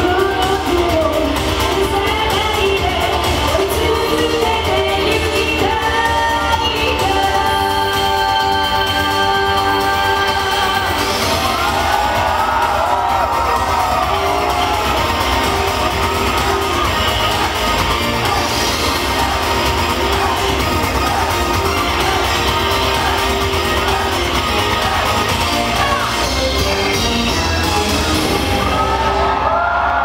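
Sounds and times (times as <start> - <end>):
crowd cheering and shouting: 0.0 - 30.0
live concert music: 0.0 - 30.0.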